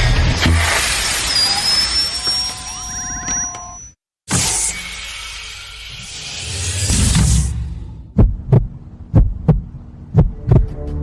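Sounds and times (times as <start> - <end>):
low hum: 6.0 - 11.0
heartbeat double thumps: 8.0 - 10.8.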